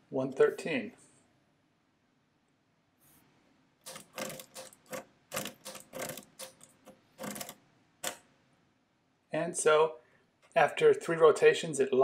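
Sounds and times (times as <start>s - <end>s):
mechanical calculator clicking: 3.8s - 8.2s.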